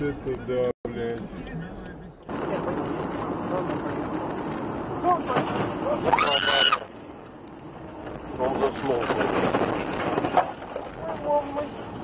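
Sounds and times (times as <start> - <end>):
car road and cabin noise: 0.0 - 6.3
person crying out and shrieking: 6.1 - 6.8.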